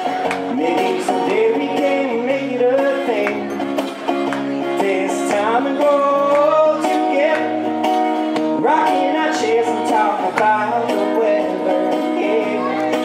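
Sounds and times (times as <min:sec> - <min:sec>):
man singing country song: 0:00.0 - 0:13.0
strummed acoustic guitar: 0:00.0 - 0:13.0.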